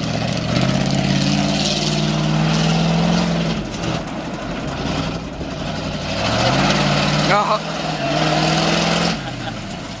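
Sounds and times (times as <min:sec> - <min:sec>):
pickup truck engine driving past: 0:00.0 - 0:10.0.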